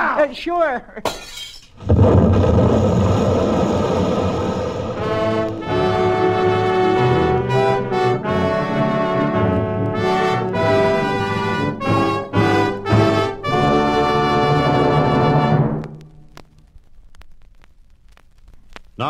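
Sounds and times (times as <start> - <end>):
explosion rumble: 1.8 - 7.2
orchestral brass music: 5.0 - 15.9.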